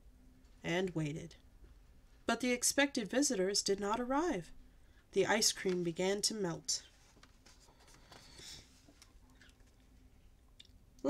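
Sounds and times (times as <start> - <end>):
paper page turning: 5.5 - 6.0, 6.9 - 9.8.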